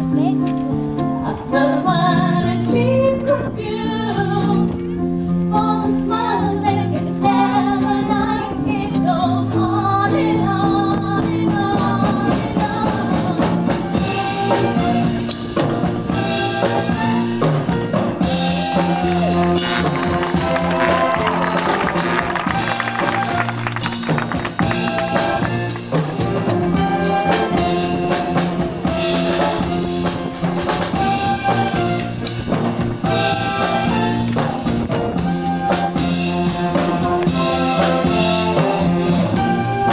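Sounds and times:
band playing live: 0.0s - 39.9s
drum strokes: 14.6s - 39.6s.

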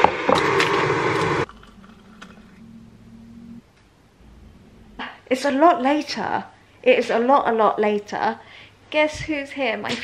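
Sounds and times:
faint low hum: 1.4s - 7.5s.

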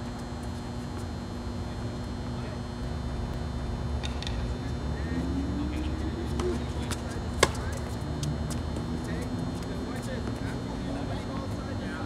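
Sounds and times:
steady low hum: 0.0s - 12.0s
distant ball hits and bounces: 6.4s - 7.8s
racket hitting tennis ball: 6.4s - 8.6s.

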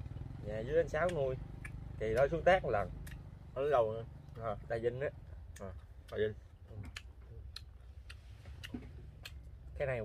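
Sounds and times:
low steady rumble: 0.0s - 10.0s
eating sounds at a table: 5.4s - 9.7s.

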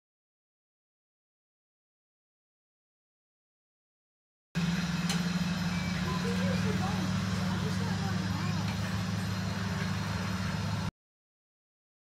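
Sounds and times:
low plane engine drone: 4.6s - 10.9s
faint voices talking: 5.5s - 10.9s.

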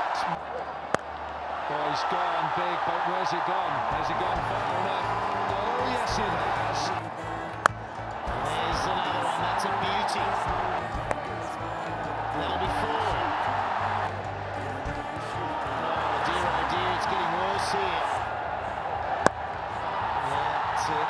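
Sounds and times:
stadium crowd noise: 0.0s - 21.0s
music: 3.8s - 21.0s.

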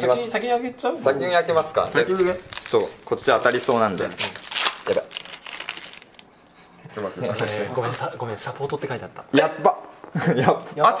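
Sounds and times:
foil wrapper crinkling: 2.0s - 6.3s.

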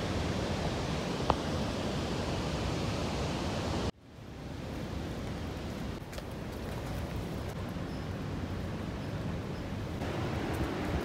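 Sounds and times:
waterfall roaring: 10.0s - 11.0s.

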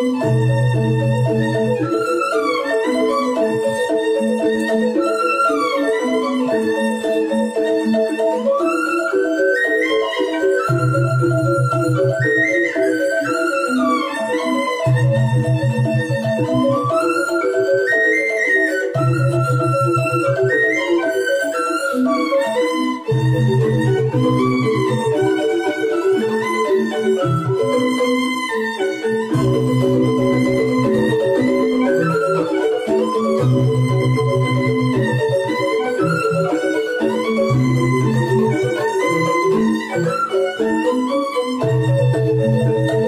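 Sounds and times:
bamboo flute melody: 0.0s - 43.0s
bamboo xylophones playing: 0.0s - 43.0s.

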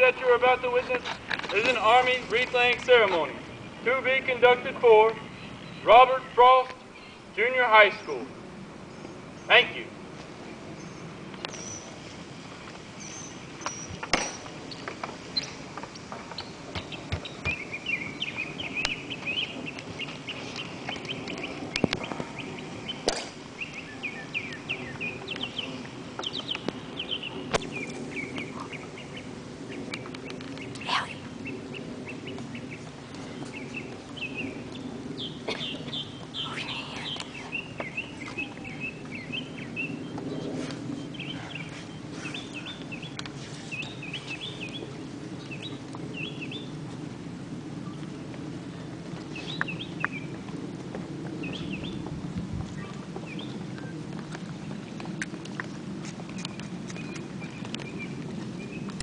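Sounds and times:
small birds chirping: 0.0s - 8.2s, 8.8s - 46.8s, 47.9s - 50.5s, 51.1s - 52.1s, 52.7s - 59.0s.

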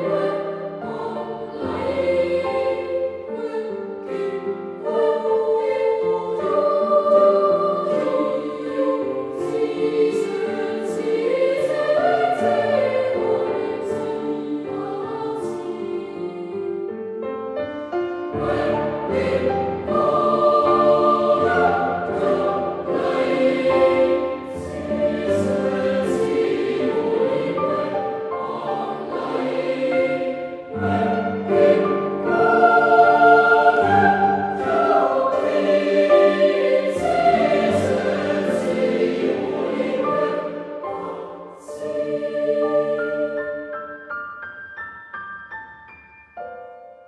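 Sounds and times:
boys' choir singing in harmony: 0.0s - 44.1s.

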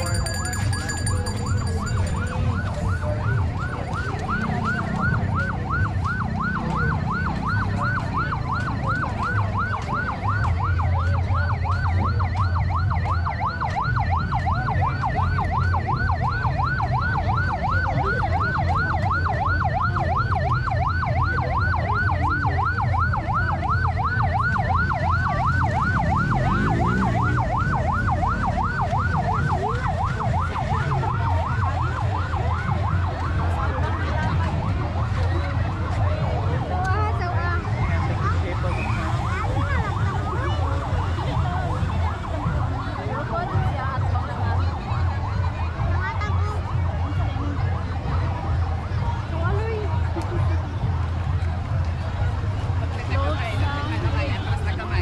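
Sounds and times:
siren yelping: 0.0s - 47.7s
low rumble of vehicles: 0.0s - 55.0s.

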